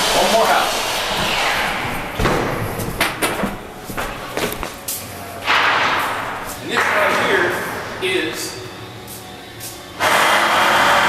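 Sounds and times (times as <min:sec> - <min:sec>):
irregular thumps and knocks: 0:01.8 - 0:04.8.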